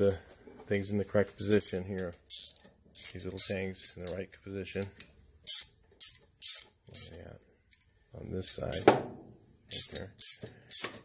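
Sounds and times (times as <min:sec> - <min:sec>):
hand ratchet clicking: 0:01.4 - 0:04.2, 0:05.4 - 0:07.8, 0:09.7 - 0:11.0.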